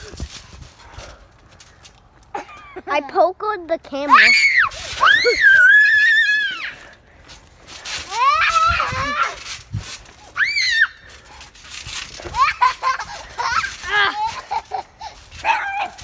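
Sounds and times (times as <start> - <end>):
children giggling and chattering: 2.1 - 4.0, 12.1 - 15.5
children shrieking and squealing: 4.1 - 7.0, 8.0 - 11.3, 12.1 - 16.0.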